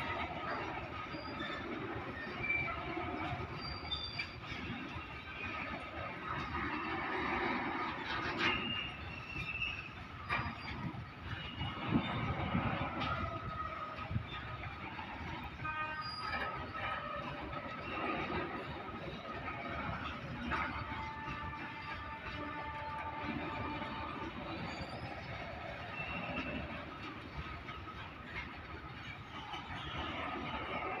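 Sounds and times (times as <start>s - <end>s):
train wheels rumbling on track: 0.0s - 31.0s
high-pitched wheel squeals: 0.1s - 5.8s, 6.4s - 26.8s.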